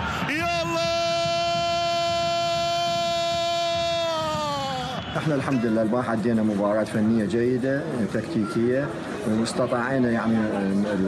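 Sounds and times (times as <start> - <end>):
commentator shouting goal: 0.2 - 5.8.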